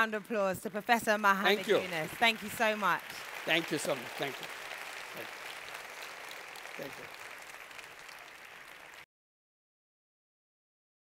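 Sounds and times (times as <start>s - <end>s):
large audience applauding: 0.0s - 9.1s.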